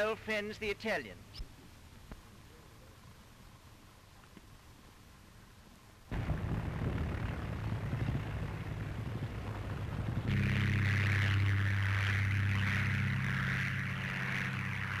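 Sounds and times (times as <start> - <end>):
piston aero engines running: 6.1 - 15.0.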